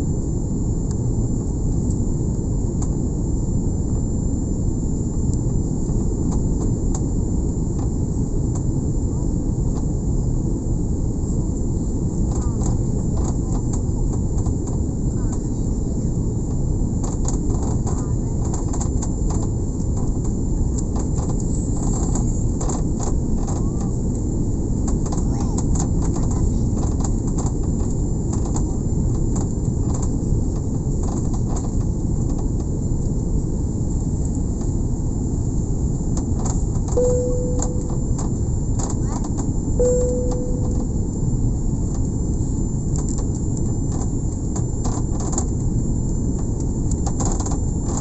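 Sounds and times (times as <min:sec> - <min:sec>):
jet airliner cabin roar: 0:00.0 - 0:48.0
short beeps: 0:37.0 - 0:38.5, 0:39.8 - 0:41.2.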